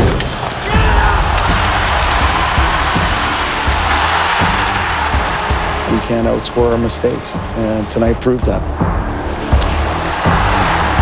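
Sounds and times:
deep low hits: 0:00.7 - 0:06.0
deep bass: 0:00.7 - 0:11.0.

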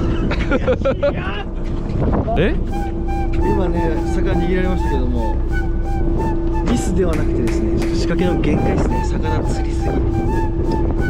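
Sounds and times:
boat engine humming: 0:00.0 - 0:11.0
wind buffeting microphone: 0:00.0 - 0:11.0.

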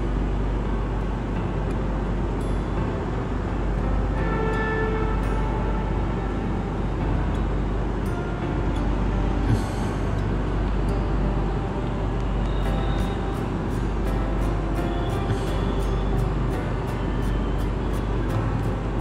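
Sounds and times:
constant hum: 0:00.0 - 0:19.0
low background rumble: 0:00.0 - 0:19.0
faint electronic tone: 0:10.9 - 0:18.8.

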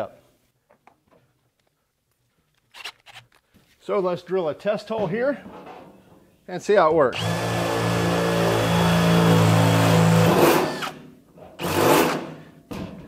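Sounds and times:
cordless drill cutting steel: 0:07.1 - 0:11.0, 0:11.6 - 0:12.4.

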